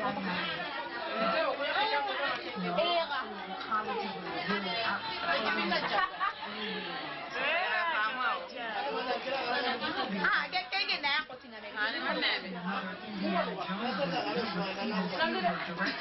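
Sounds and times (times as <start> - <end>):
people chattering: 0.0 - 16.0.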